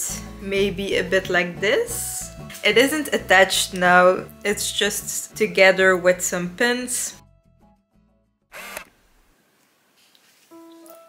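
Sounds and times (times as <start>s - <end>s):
woman's voice: 0.0s - 7.2s.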